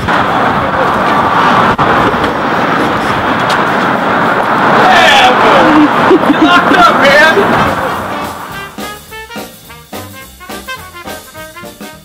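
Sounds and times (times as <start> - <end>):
loud city street traffic: 0.0 - 12.0.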